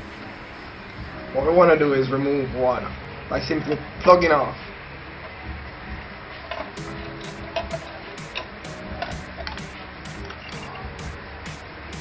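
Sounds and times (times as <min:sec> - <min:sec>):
hi-hat ticks: 0:06.8 - 0:12.0.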